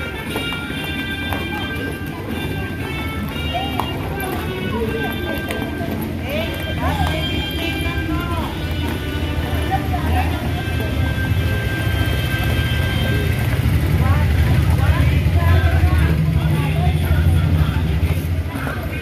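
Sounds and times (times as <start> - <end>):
song playing: 0.0 - 19.0.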